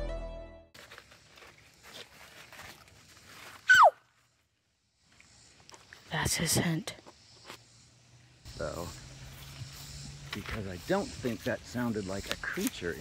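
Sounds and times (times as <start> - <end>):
background music: 0.0 - 0.7
faint rustling footsteps: 8.8 - 13.0.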